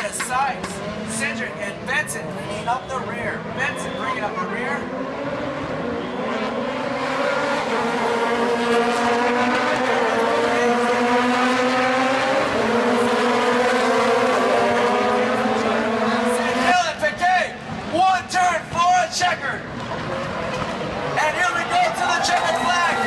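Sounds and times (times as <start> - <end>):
commentator over public address: 0.0 - 5.1, 10.0 - 11.4, 14.2 - 19.7, 21.1 - 23.0
race car engines running hard: 0.0 - 23.0.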